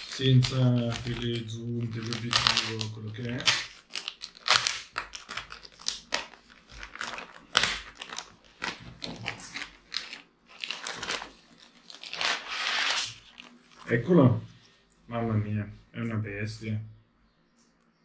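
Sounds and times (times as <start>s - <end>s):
plastic bag crinkling: 0.0s - 14.3s.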